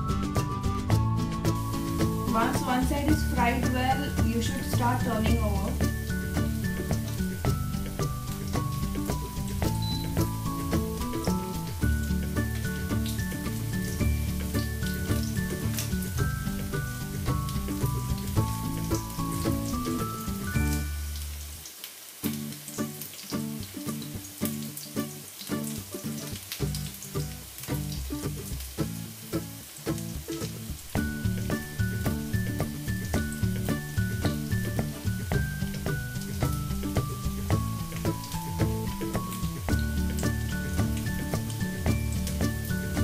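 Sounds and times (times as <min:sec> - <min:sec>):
background music: 0:00.0 - 0:21.6, 0:24.8 - 0:43.0
cutlets sizzling in oil: 0:00.0 - 0:43.0.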